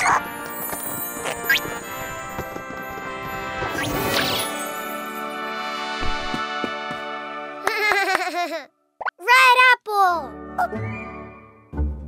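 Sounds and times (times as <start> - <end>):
cartoon baby giggling: 7.6 - 8.7.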